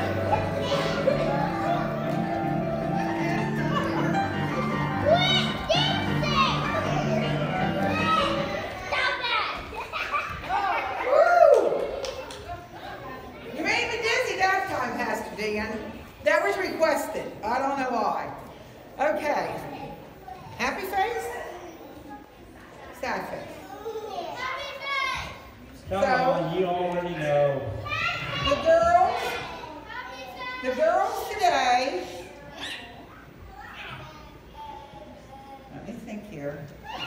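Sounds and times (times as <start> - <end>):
children shrieking and shouting: 0.0 - 2.2, 3.6 - 12.1, 23.6 - 25.5, 27.8 - 30.6, 32.4 - 35.2, 36.8 - 37.0
background music: 0.0 - 8.7.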